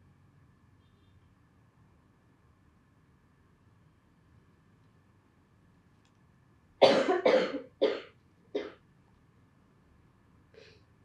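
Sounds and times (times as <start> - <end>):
person coughing: 6.8 - 8.8.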